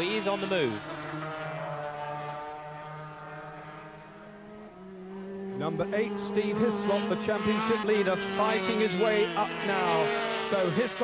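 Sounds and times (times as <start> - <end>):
racing motorcycle engines revving: 0.0 - 11.0.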